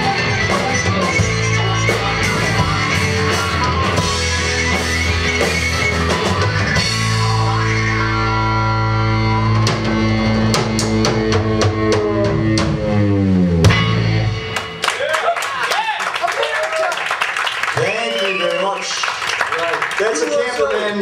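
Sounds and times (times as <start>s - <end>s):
live rock band playing: 0.0s - 15.6s.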